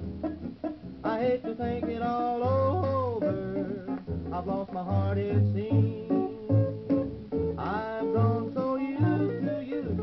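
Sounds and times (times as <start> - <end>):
guitar accompaniment: 0.0 - 10.0.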